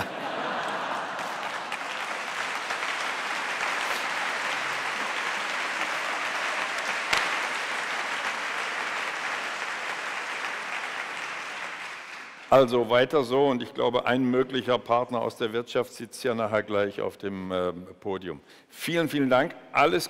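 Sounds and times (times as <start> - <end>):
audience applauding: 0.0 - 12.7.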